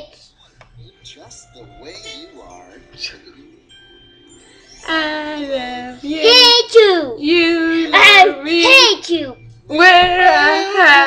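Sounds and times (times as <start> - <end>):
girl singing loudly: 4.9 - 11.0.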